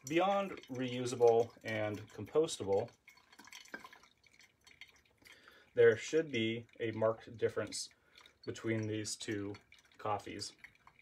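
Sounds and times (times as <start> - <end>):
coffee dripping: 0.0 - 11.0.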